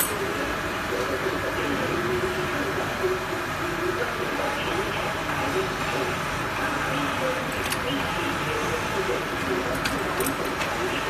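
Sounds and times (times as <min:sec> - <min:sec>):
lathe running: 0:00.0 - 0:11.0.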